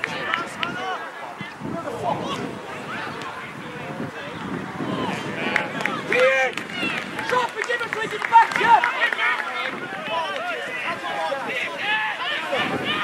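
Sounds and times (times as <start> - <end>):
voices shouting: 0.0 - 13.0.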